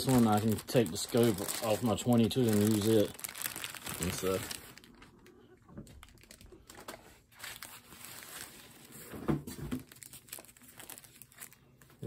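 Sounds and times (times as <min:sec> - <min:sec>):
foam wrap crinkling: 0:00.0 - 0:12.0.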